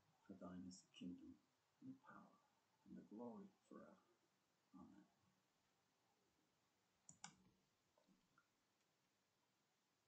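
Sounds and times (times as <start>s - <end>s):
faint clicks: 7.0s - 8.9s.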